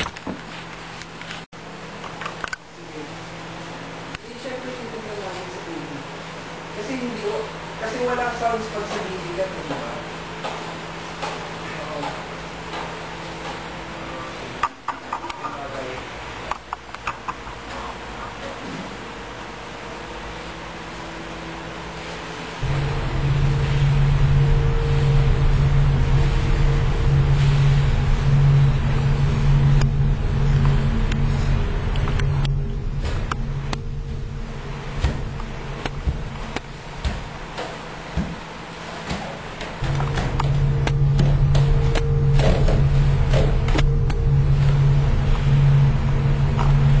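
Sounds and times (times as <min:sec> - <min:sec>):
low ominous rumbling drone: 0:02.7 - 0:47.0
loud low hum: 0:17.2 - 0:47.0.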